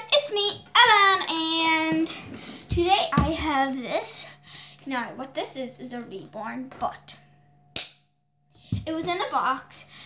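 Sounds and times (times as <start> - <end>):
girl singing wordless notes: 0.0 - 7.2, 8.7 - 10.0.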